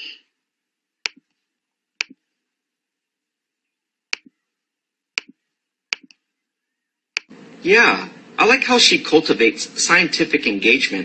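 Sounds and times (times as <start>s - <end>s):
computer mouse button clicks: 5.2s - 6.2s.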